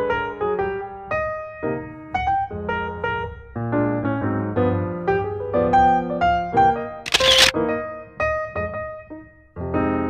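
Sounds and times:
camera shutter sound effect: 7.1s - 7.5s.

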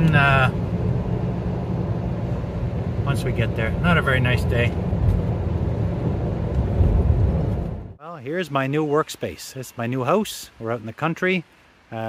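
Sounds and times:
car cabin low rumble: 0.0s - 8.0s.

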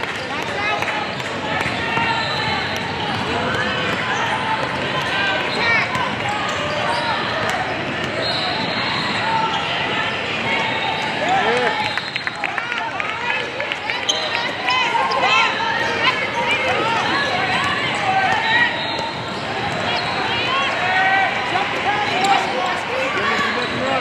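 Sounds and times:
background chatter: 0.0s - 24.0s
sneakers squeaking: 0.2s - 12.4s, 13.7s - 24.0s.

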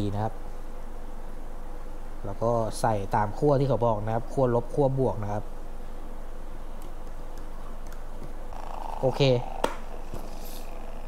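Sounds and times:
higher hum: 7.5s - 11.0s
air pump buzzing purr: 8.2s - 11.0s.

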